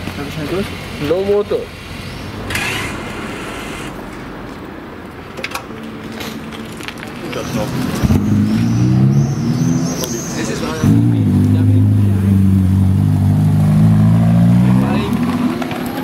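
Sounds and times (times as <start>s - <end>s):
car engine starting and idling: 0.0s - 5.8s.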